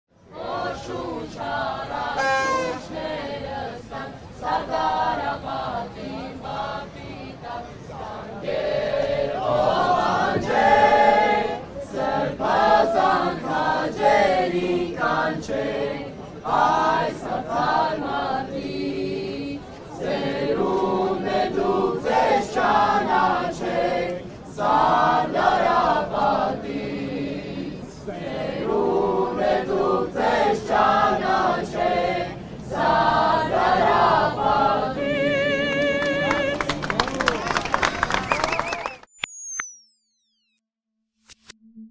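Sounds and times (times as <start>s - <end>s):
group singing in unison: 0.3s - 36.6s.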